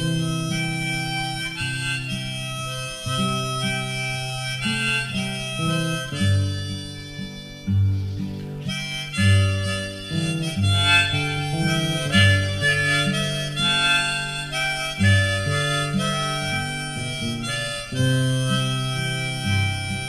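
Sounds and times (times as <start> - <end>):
folk music on free-reed instrument: 0.0 - 20.0.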